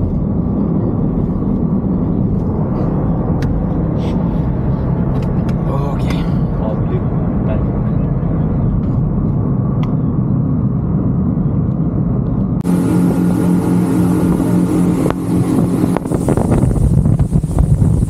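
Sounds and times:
car cabin road and engine rumble: 0.0s - 18.0s.

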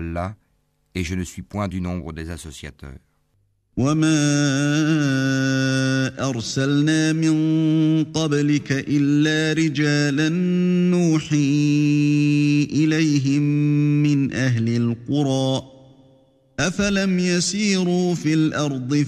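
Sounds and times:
man chanting melodically: 3.7s - 19.0s.

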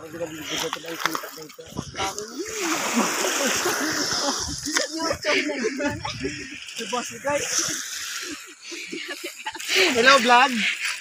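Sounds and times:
voices: 0.0s - 11.0s
water splashing and churning: 0.0s - 11.0s.

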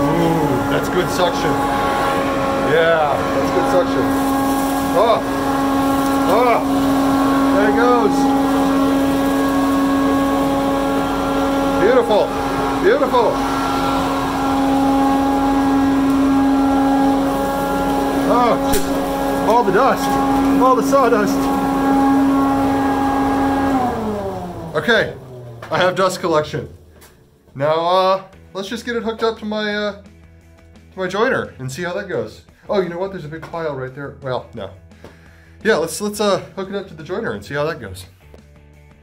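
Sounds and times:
dust collector humming: 0.0s - 29.7s.

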